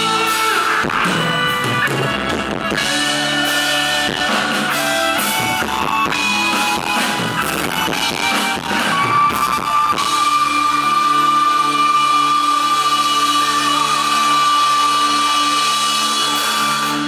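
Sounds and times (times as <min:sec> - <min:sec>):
live band music: 0:00.0 - 0:17.0.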